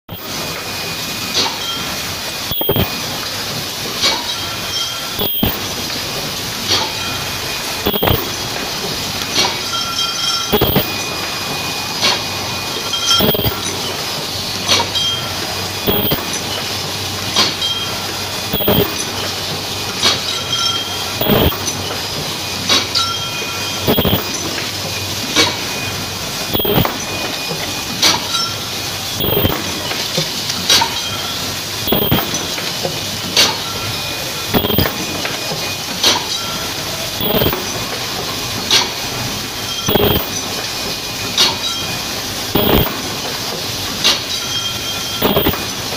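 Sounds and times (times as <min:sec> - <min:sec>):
machine running noise: 0:00.0 - 0:45.9
sharp machine knock: 0:02.5 - 0:03.0, 0:05.2 - 0:05.7, 0:07.8 - 0:08.4, 0:10.5 - 0:11.0, 0:13.1 - 0:13.7, 0:15.9 - 0:16.4, 0:18.5 - 0:19.1, 0:21.2 - 0:21.8, 0:23.9 - 0:24.5, 0:26.5 - 0:27.0, 0:29.2 - 0:29.8, 0:31.8 - 0:32.5, 0:34.5 - 0:35.0, 0:37.2 - 0:37.7, 0:39.9 - 0:40.4, 0:42.6 - 0:43.0, 0:45.2 - 0:45.7.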